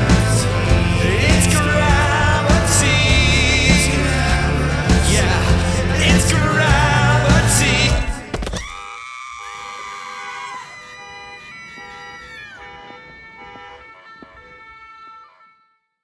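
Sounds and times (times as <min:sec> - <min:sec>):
music: 0:00.0 - 0:08.4
siren wailing with pulsing tones: 0:08.3 - 0:16.0.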